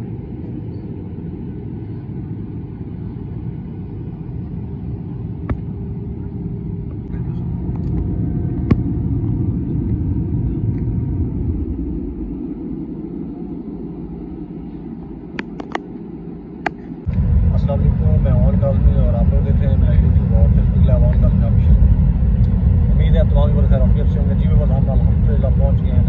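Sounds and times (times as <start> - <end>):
jet cabin engine rumble: 0.0 - 26.0.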